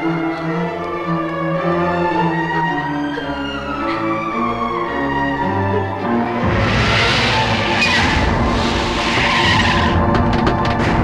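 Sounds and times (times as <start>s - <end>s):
tyres skidding on dirt: 6.4s - 11.0s.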